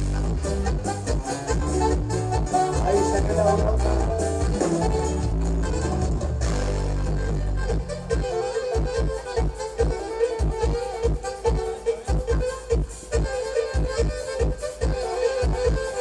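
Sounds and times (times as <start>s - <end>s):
live regional band music: 0.0s - 16.0s
prominent bass line: 0.0s - 16.0s.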